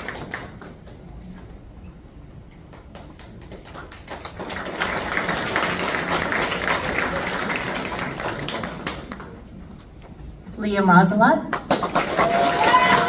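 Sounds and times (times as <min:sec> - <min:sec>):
audience applauding: 0:00.0 - 0:01.0, 0:02.7 - 0:09.6, 0:11.6 - 0:13.0.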